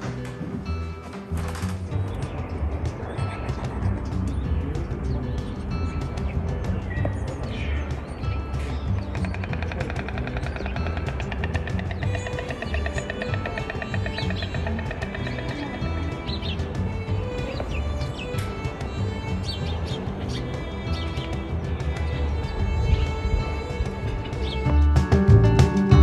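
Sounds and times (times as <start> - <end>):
background music with bass: 0.0 - 26.0
stork bill clattering: 0.0 - 26.0.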